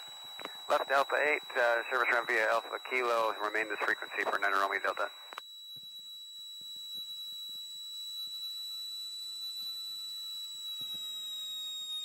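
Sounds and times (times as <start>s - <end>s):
high-pitched electronic whine: 0.0s - 12.0s.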